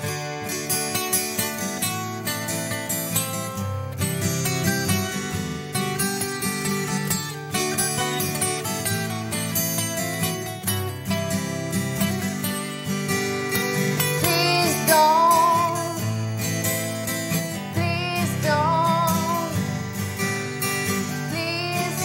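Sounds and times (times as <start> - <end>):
acoustic guitars playing chords: 0.0 - 22.0
wavering higher melody: 6.7 - 22.0.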